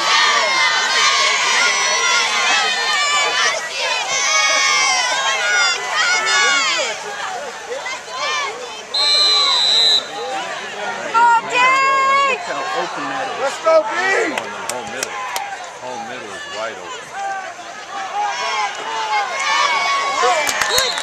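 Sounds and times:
crowd shouting and cheering: 0.0 - 21.0
high whistle: 8.9 - 10.2, 20.6 - 21.0.

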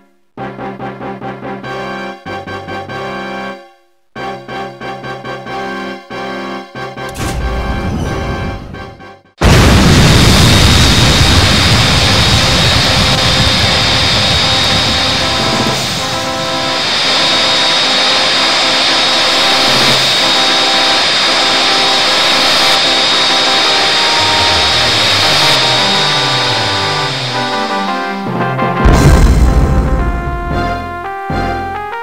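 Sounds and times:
music: 0.0 - 9.4, 14.4 - 32.0
deep rumble: 7.1 - 20.3, 22.1 - 30.9
descending low notes: 7.1 - 31.7
jet-like rushing engine: 9.4 - 30.0.

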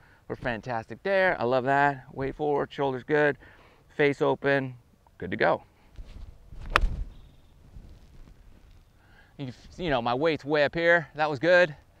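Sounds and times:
golf iron striking ball: 6.6 - 7.2.

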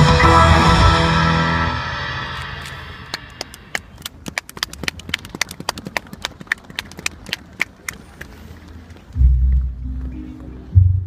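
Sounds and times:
live band chord: 0.0 - 3.3
scattered handclaps: 3.1 - 8.3.

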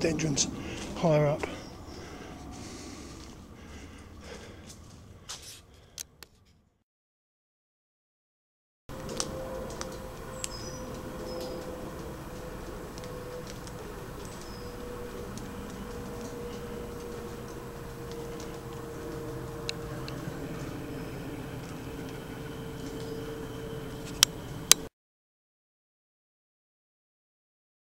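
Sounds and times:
drone with falling tone: 0.0 - 5.7, 8.9 - 24.9.

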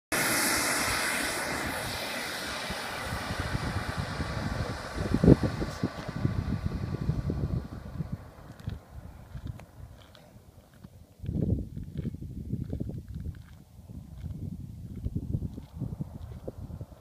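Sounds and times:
model jet engine whine: 0.1 - 10.2
low buffeting: 0.1 - 13.3.

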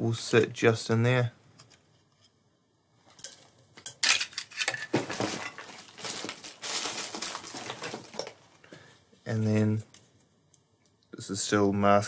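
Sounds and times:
plastic rustling: 4.1 - 10.3.

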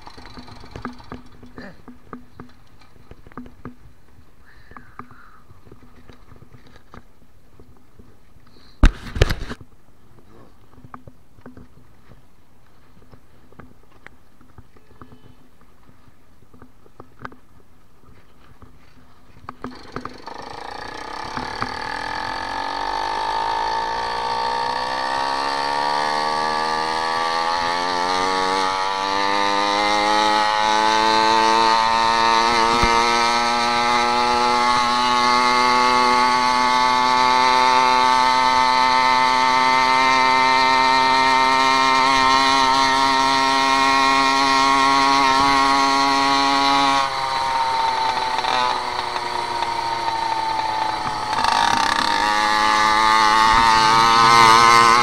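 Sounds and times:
small motorbike engine: 0.0 - 3.8, 19.3 - 55.0.

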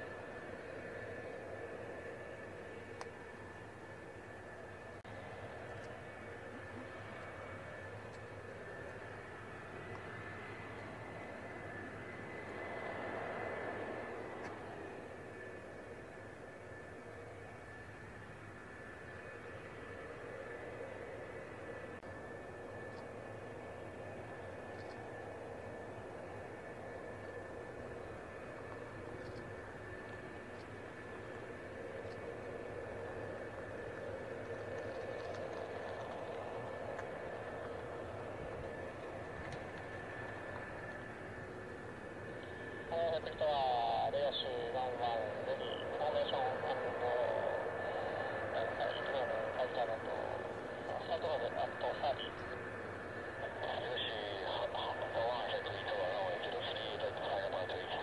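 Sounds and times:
jet engines whining: 0.0 - 58.0.

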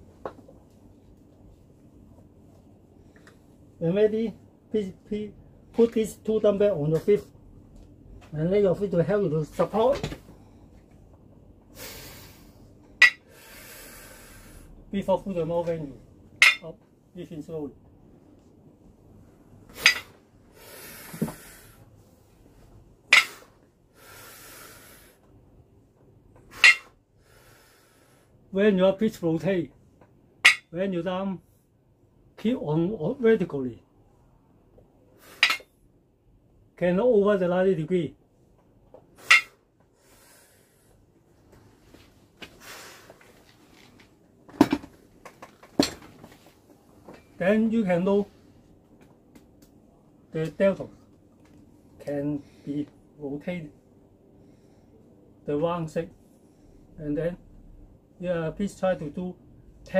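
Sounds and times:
person breathing: 11.8 - 14.8, 20.5 - 21.9, 23.2 - 25.2, 27.2 - 28.4, 39.9 - 41.0
dumbbells clinking together: 13.0 - 13.2, 16.4 - 16.7, 19.8 - 20.1, 23.1 - 23.5, 26.5 - 26.9, 30.4 - 30.7, 35.4 - 35.7, 39.2 - 39.6.

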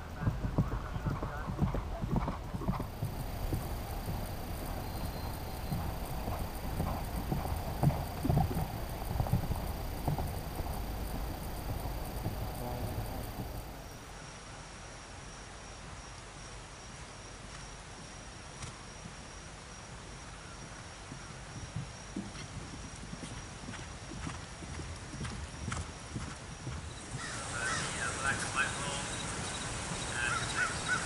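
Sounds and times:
horse galloping on grass: 0.0 - 14.0, 17.9 - 31.0.

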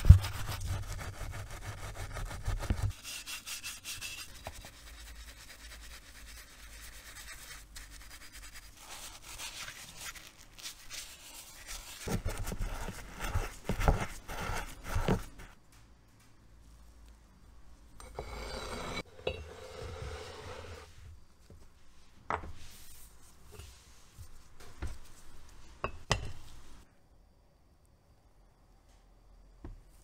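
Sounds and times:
bristle brush scrubbing metal: 0.0 - 15.4.

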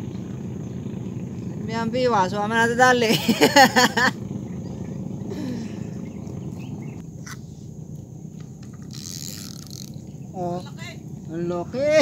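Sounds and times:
outdoor background: 0.0 - 12.0
man laughing: 3.0 - 4.2.

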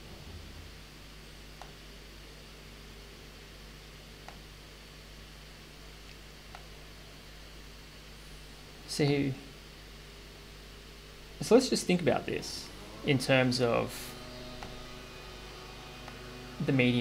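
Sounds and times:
hiss with low hum: 0.0 - 17.0.

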